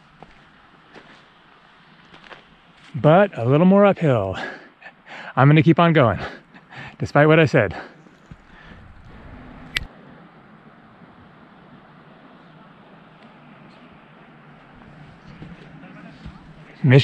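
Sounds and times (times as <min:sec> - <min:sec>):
faint outdoor background noise: 0:00.0 - 0:17.0
sharp click: 0:09.7 - 0:09.9.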